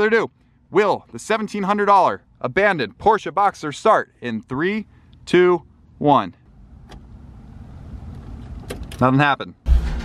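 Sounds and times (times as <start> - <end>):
low hum and rumble: 2.2 - 9.0
ignition click: 6.8 - 7.1, 8.1 - 9.1.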